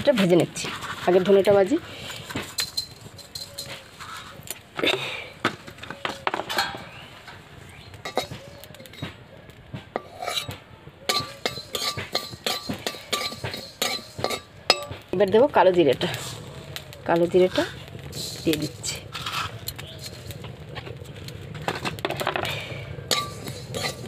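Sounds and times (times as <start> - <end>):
metal spatula scraping iron pan: 0.2 - 4.6, 5.7 - 7.4, 8.0 - 9.2, 10.0 - 15.4, 17.4 - 24.0.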